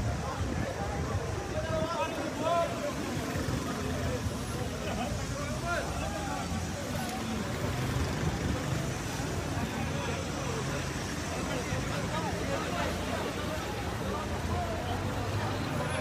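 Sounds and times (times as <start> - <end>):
people talking and calling out: 0.0 - 16.0.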